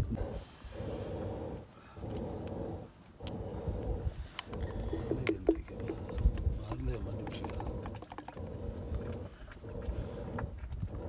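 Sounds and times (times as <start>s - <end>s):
liquid sloshing from churning: 4.5s - 11.0s.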